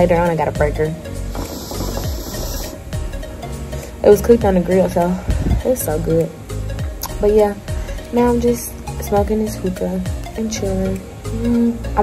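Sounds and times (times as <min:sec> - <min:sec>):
background music: 0:00.0 - 0:12.0
hookah water bubbling: 0:01.2 - 0:03.0.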